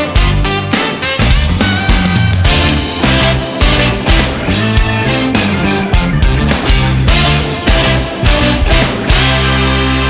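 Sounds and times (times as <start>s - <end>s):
funk band playing: 0.0s - 10.0s.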